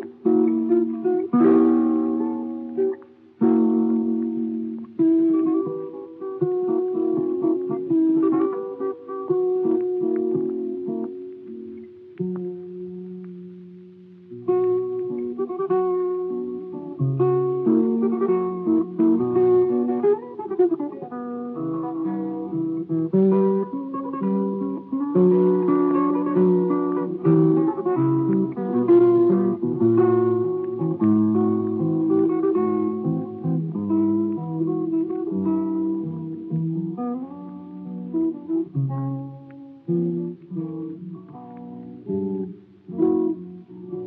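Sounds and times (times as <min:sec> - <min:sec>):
classical guitar waltz: 0:00.0 - 0:44.0.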